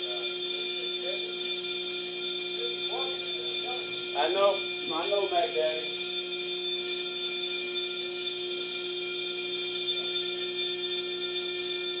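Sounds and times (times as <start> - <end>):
fire alarm tone: 0.0 - 12.0.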